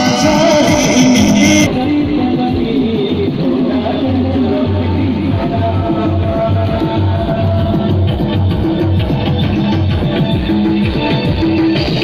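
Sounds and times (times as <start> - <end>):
loud guitar music over loudspeakers: 0.0 - 12.0.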